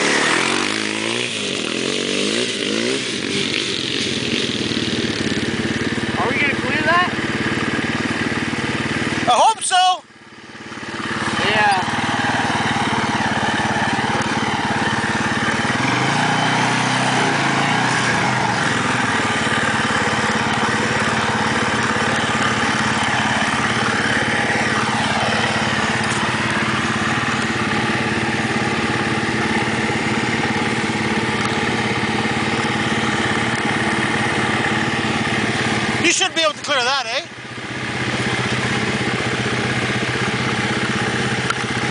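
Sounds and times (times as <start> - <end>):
quad engine running: 0.0 - 41.9.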